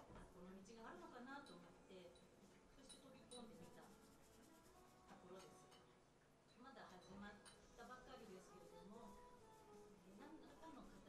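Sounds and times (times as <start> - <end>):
woman talking: 0.0 - 5.8, 6.5 - 11.0.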